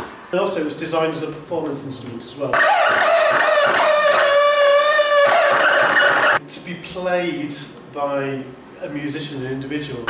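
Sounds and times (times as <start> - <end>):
electronic feedback squeal: 2.6 - 6.4.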